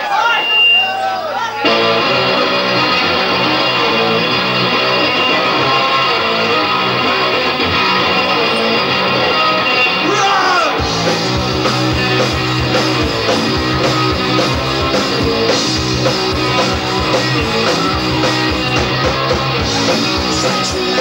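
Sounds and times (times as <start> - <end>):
drums: 0.0 - 21.0
distorted electric guitars: 0.2 - 21.0.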